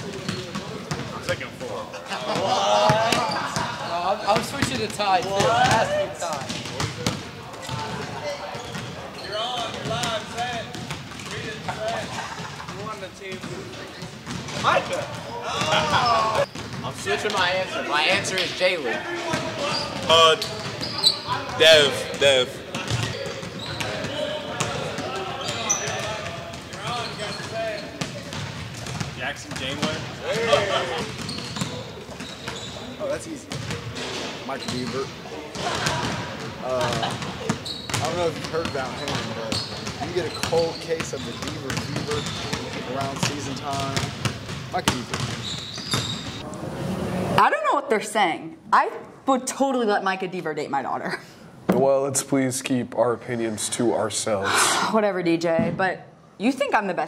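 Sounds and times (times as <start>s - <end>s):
people talking: 0.0s - 7.0s, 34.6s - 37.1s, 47.4s - 57.0s
players talking: 0.0s - 51.1s
basketball bouncing on wooden floor: 0.1s - 1.1s, 4.3s - 8.0s, 13.3s - 15.2s, 16.4s - 16.9s, 22.7s - 30.0s, 33.5s - 33.9s, 36.9s - 46.4s.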